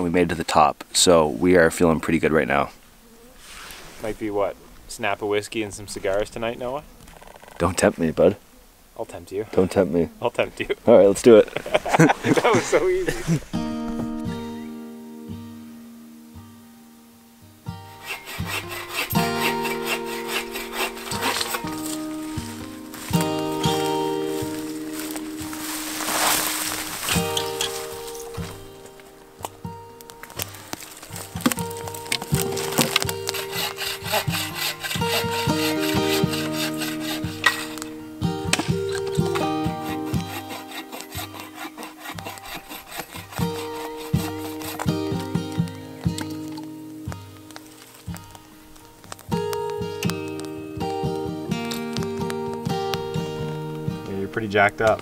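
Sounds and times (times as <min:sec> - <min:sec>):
sustained melodic background music: 0:17.5 - 0:42.1, 0:43.4 - 0:55.0
sawing firewood: 0:17.8 - 0:29.6, 0:30.2 - 0:46.6
firewood snapping: 0:18.0 - 0:53.8.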